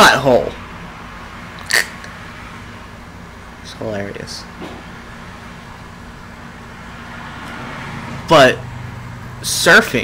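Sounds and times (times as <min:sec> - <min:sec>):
room hum and hiss: 0:00.0 - 0:10.0.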